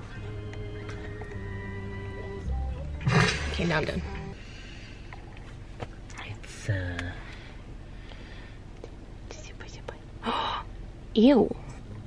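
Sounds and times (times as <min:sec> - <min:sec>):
person whispering: 0:09.3 - 0:10.4.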